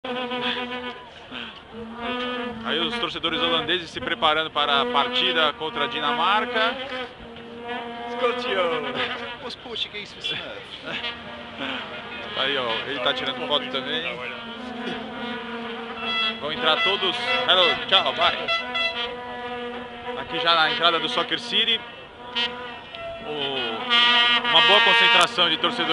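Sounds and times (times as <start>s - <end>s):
vuvuzela horns droning: 0.1s - 25.9s.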